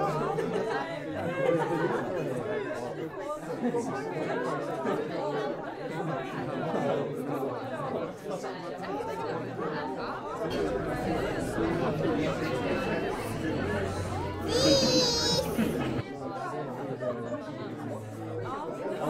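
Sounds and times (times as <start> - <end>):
indistinct chatter of many guests: 0.0 - 19.0.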